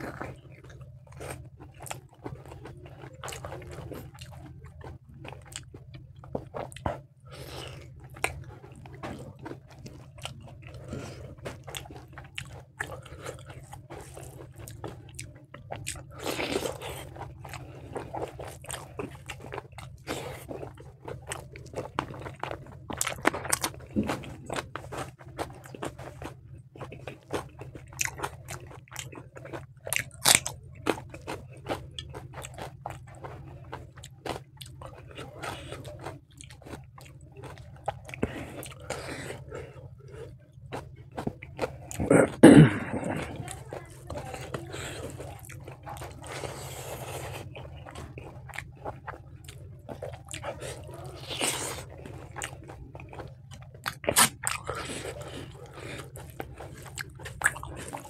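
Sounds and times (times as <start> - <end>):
person chewing food: 0.0 - 58.0
wet mouth clicks and crunches: 0.0 - 58.0.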